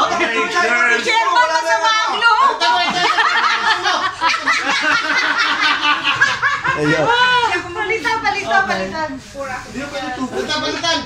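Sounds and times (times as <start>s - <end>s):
group of people laughing: 2.2s - 7.6s.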